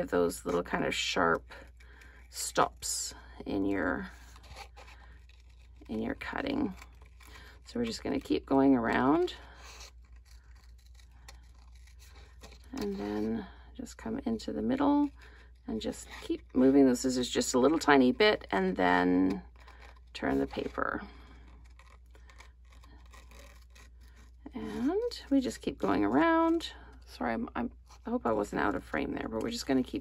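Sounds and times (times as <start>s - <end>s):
paper rustling: 4.0s - 8.3s, 8.9s - 13.4s, 19.2s - 26.6s
scissors snipping paper: 9.1s - 13.2s, 21.3s - 25.2s.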